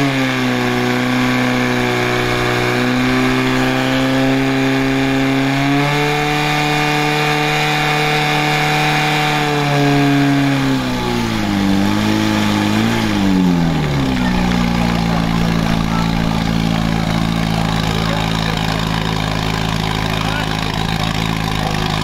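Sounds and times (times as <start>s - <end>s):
pump engine revs falling: 0.0s - 22.0s.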